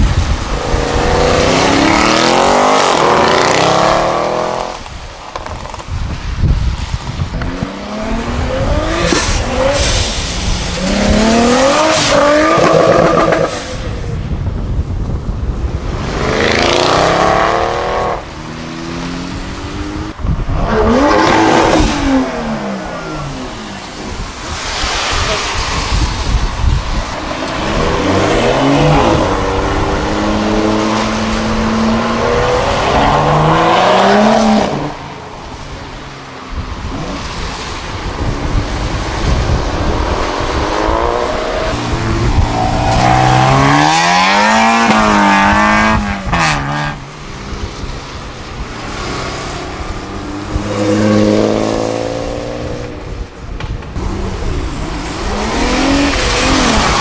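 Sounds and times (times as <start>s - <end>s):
cars accelerating hard: 0.1s - 4.9s, 7.4s - 14.1s, 15.8s - 35.2s, 36.7s - 53.3s, 54.0s - 57.0s
tyres hissing on wet road: 7.8s - 14.1s, 21.0s - 53.2s, 54.0s - 57.0s.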